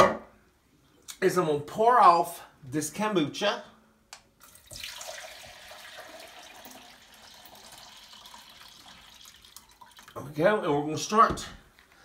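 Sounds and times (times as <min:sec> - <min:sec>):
liquid pouring and splashing: 0:04.4 - 0:10.2.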